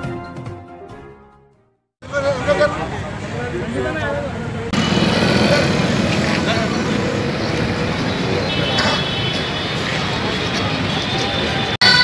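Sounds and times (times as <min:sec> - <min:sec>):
crowd talking indistinctly: 0:02.0 - 0:12.0
road traffic noise: 0:02.0 - 0:12.0.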